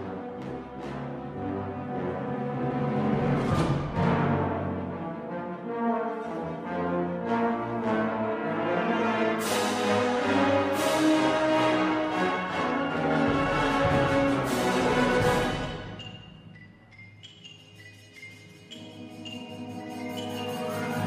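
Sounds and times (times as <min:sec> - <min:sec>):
wind ensemble chords: 0:00.0 - 0:16.0
percussion strikes: 0:09.4 - 0:21.0.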